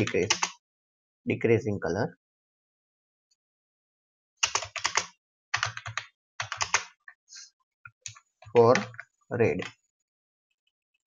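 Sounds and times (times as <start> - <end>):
computer keyboard typing: 0.0 - 0.6, 4.4 - 7.0, 7.9 - 9.8.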